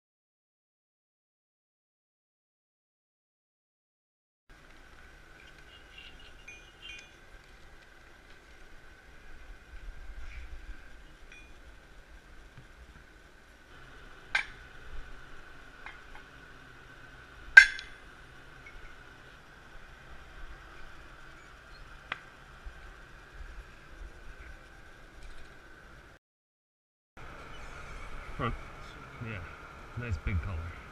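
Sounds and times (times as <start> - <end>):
high-pitched hum: 27.2 - 30.9.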